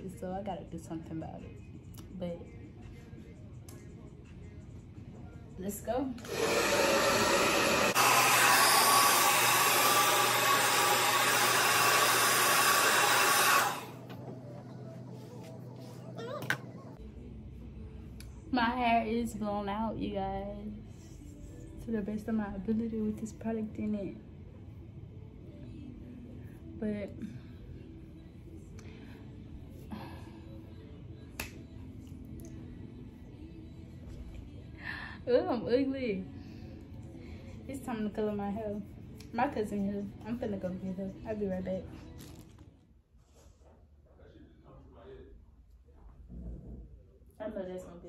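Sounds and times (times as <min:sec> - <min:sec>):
hair dryer blowing: 0:06.2 - 0:14.0
finger snap: 0:31.3 - 0:32.6.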